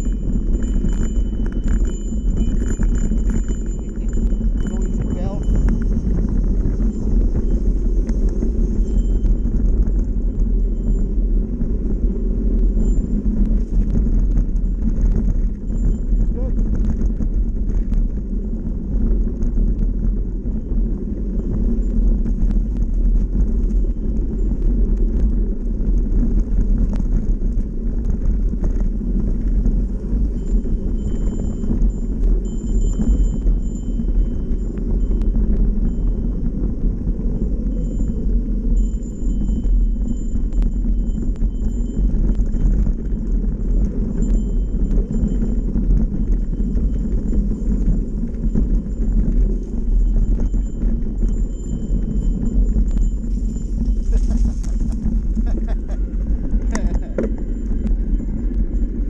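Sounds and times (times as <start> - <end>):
bike tyres rumbling on dirt trail: 0.0 - 59.0.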